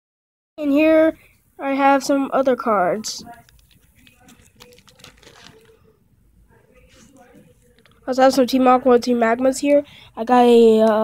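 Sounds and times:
plastic pages crinkling: 0:03.2 - 0:05.9.

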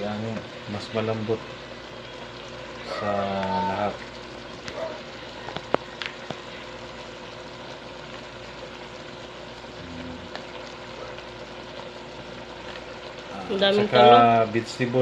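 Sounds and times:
pot simmering with low hiss: 0:00.0 - 0:15.0.

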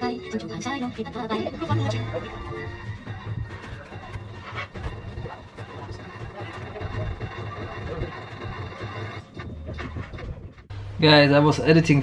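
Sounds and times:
outdoor ambient noise: 0:00.0 - 0:12.0.

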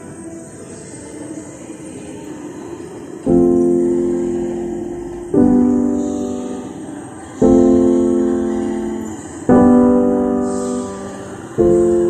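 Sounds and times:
piano chord ringing: 0:03.3 - 0:12.0.

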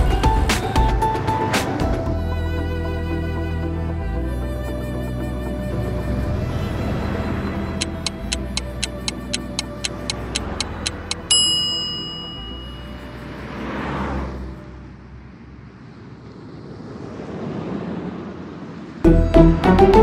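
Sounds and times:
whooshing swell: 0:05.2 - 0:11.2
sharp ticking: 0:07.7 - 0:13.0
bell-like strike ringing: 0:11.2 - 0:13.2.

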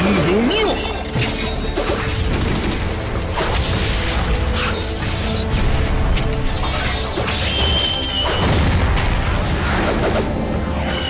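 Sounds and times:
dramatic fight music: 0:00.0 - 0:11.0.

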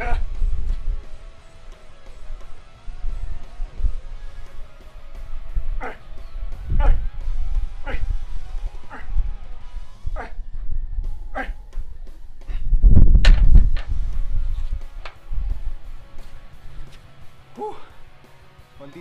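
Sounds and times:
background music: 0:00.0 - 0:19.0
man exhaling with effort: 0:17.6 - 0:18.0.

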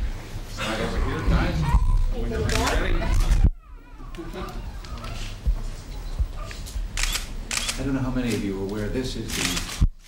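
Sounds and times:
man speaking: 0:00.6 - 0:03.2
camera shutters clicking: 0:06.5 - 0:08.5, 0:09.2 - 0:09.9.

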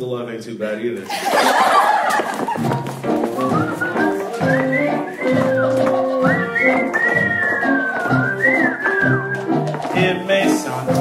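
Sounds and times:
live band show music: 0:02.6 - 0:11.0
swooping high melody: 0:02.8 - 0:09.8.

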